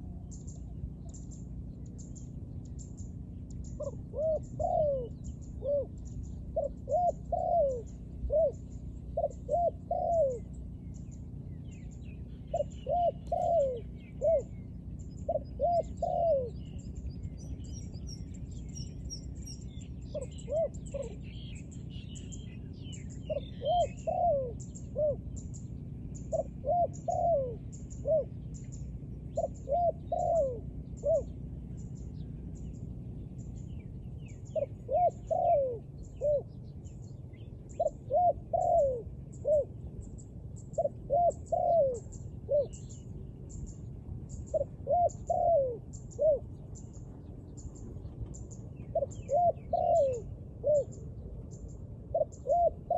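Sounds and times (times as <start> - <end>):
dove cooing: 0.0 - 52.9
small birds chirping: 0.0 - 52.9.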